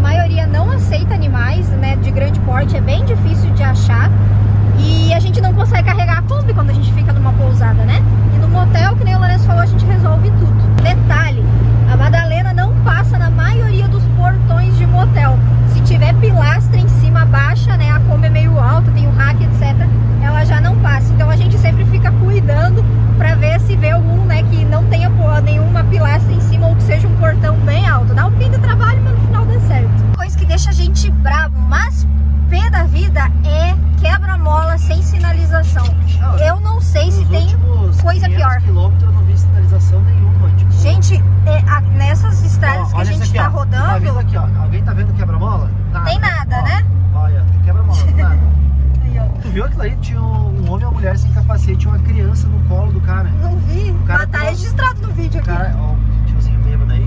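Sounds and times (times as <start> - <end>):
woman talking: 0.0 - 44.2, 45.9 - 46.9, 47.9 - 48.4, 53.6 - 55.6
van engine droning: 0.0 - 57.0.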